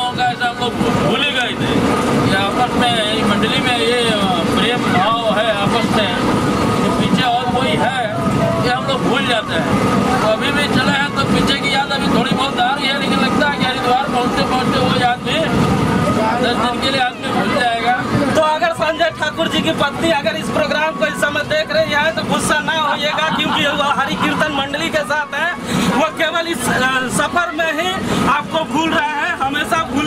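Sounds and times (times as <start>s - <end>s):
men talking: 0.0s - 30.0s
train running: 0.0s - 30.0s.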